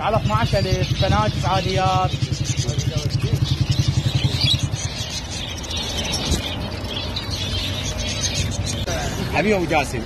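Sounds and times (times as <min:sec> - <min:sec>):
engine running: 0:00.0 - 0:10.0
finches chirping: 0:00.0 - 0:10.0.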